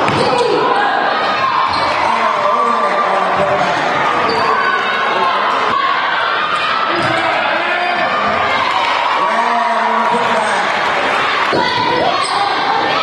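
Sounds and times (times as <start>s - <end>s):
indistinct crowd voices: 0.0s - 13.0s.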